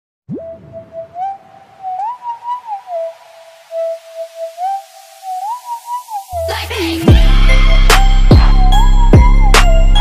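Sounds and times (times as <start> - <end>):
whistle-like tone melody: 0.3 - 6.6, 7.5 - 10.0.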